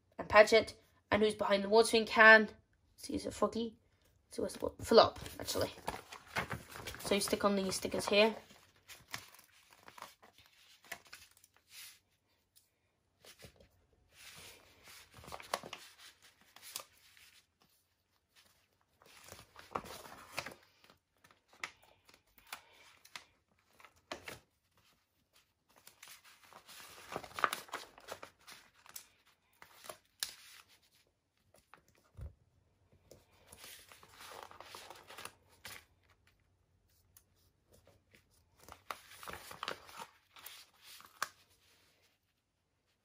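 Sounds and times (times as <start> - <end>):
paper sheet rustling: 4.9 - 12.4, 13.2 - 32.3, 33.3 - 42.4.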